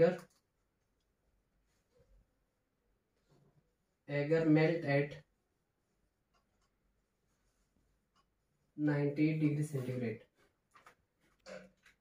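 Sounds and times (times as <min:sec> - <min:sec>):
marker pen writing on whiteboard: 0:06.1 - 0:08.7.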